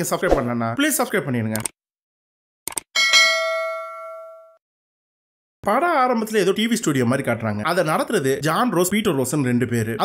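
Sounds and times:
notification bell ding: 3.0s - 4.6s.

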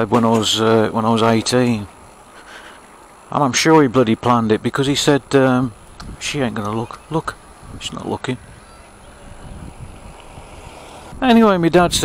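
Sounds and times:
tyre and road noise: 0.0s - 12.0s
wind on microphone: 5.7s - 12.0s.

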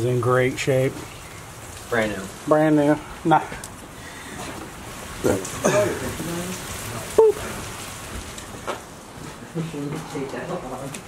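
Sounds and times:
steady rain: 0.0s - 11.0s
vocal exclamation: 7.1s - 7.5s.

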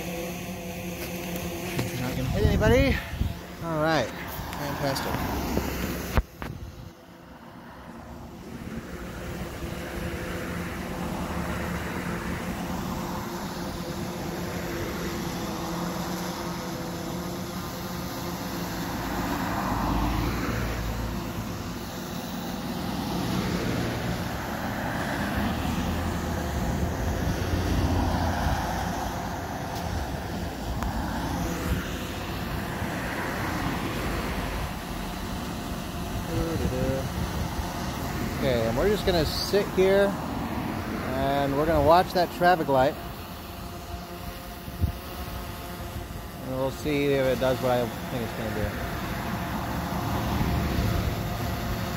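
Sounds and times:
cars passing: 0.0s - 51.9s.

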